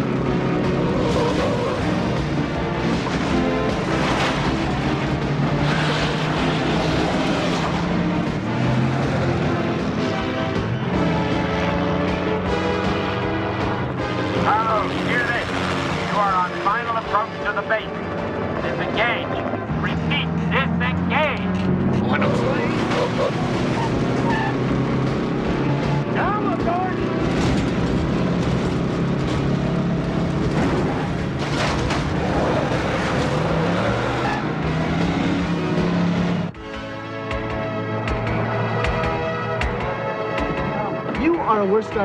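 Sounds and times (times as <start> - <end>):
truck engine running hard: 0.0 - 41.8
action film music: 0.0 - 42.0
vehicle noise: 0.0 - 42.0.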